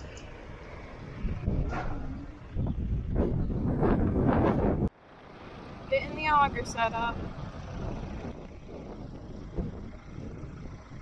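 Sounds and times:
wind buffeting microphone: 0.0s - 5.0s, 5.6s - 11.0s
tractor engine running: 0.0s - 11.0s.

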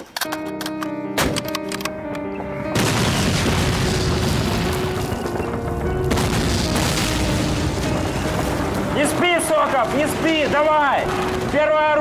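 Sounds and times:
background music: 0.0s - 12.0s
shell explosion rumble: 2.8s - 9.0s.

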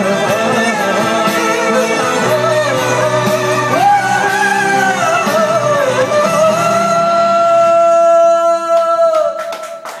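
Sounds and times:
scattered claps: 8.7s - 10.0s.

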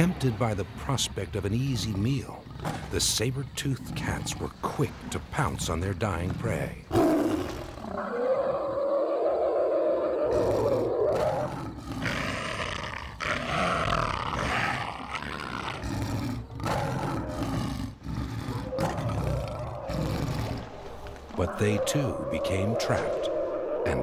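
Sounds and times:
big cat roaring: 6.2s - 24.0s.

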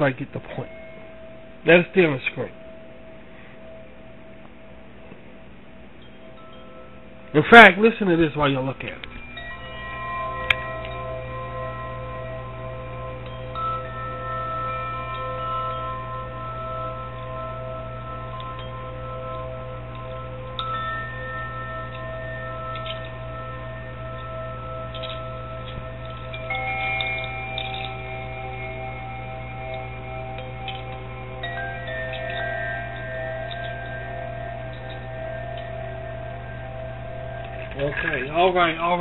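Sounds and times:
chimes ringing: 0.0s - 39.0s
steady low hum: 0.0s - 39.0s.

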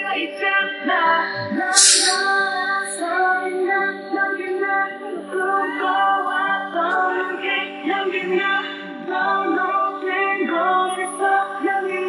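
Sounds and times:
young men singing: 1.4s - 3.0s
short hissing burst: 1.7s - 3.0s.

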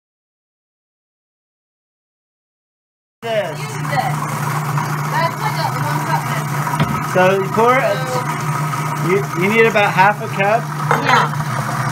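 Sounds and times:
food processor motor humming: 3.2s - 11.9s
voices: 5.0s - 8.4s.

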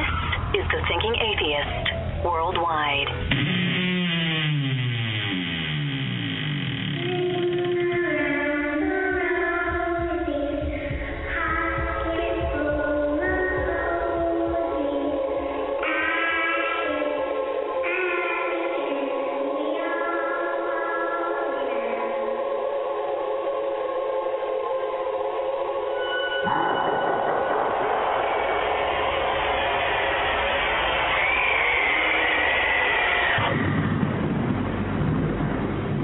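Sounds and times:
eerie choral music: 7.0s - 36.0s
low rumble: 26.3s - 36.0s
dense rushing noise: 26.9s - 36.0s.

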